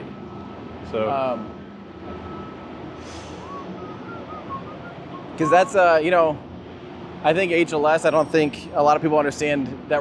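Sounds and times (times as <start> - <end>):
factory hall background noise: 0.0 - 10.0
short whistle-like notes: 2.2 - 6.0.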